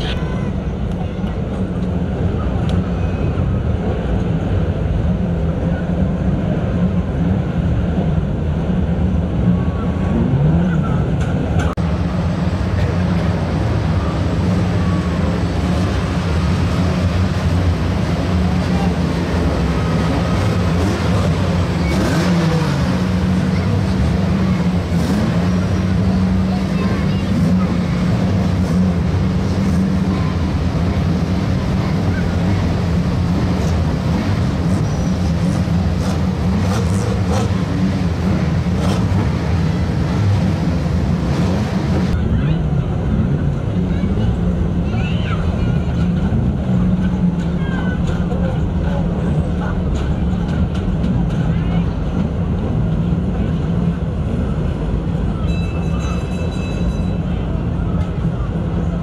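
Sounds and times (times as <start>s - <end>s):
stock car engines running: 0.0s - 59.0s
engine revving: 10.0s - 42.2s.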